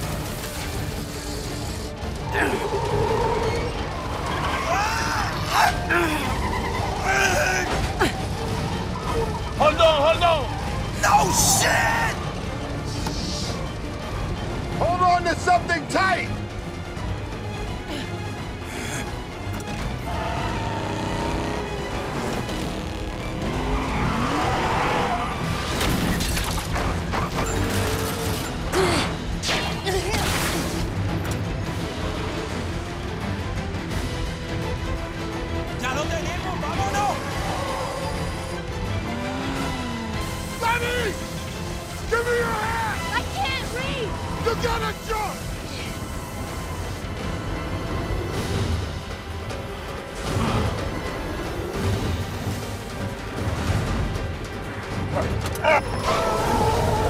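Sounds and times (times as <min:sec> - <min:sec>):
engine rumble and road noise: 0:00.0 - 0:29.4, 0:30.6 - 0:56.0
vehicles driving at speed: 0:00.0 - 0:29.4, 0:30.6 - 0:57.0
film music score: 0:00.0 - 0:57.0
tyres squealing: 0:02.3 - 0:12.2.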